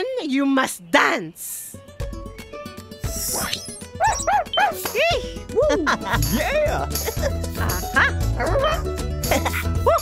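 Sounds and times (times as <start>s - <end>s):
lively cartoon music: 1.7s - 10.0s
cartoon dog yipping: 3.3s - 5.0s, 8.0s - 8.9s.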